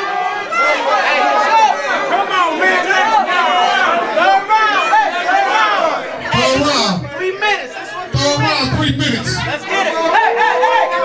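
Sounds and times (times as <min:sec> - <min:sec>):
crowd of men shouting: 0:00.0 - 0:08.4, 0:09.5 - 0:11.0.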